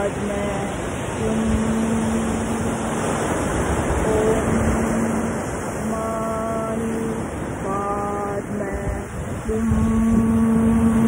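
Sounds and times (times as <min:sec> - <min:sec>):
woman chanting a low note: 0:00.0 - 0:02.9, 0:04.0 - 0:11.0
ocean surf breaking: 0:00.0 - 0:11.0.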